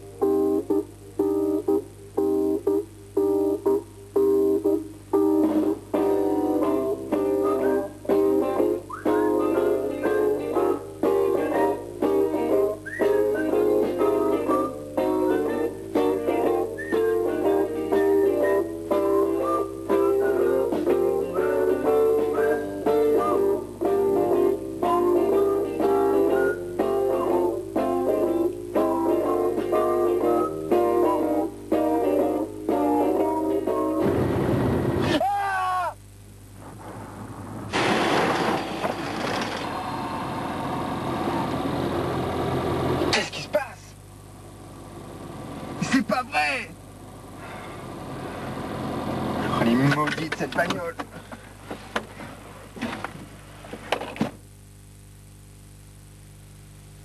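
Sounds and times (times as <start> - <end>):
plucked guitar notes: 0.0 - 34.1.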